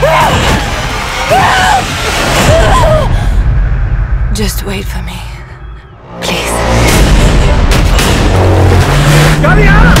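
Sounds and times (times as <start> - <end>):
car driving fast: 7.8 - 10.0.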